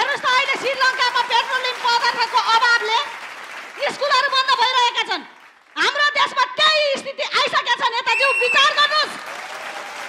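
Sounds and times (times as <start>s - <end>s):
audience applauding: 0.0s - 4.1s, 8.7s - 10.0s.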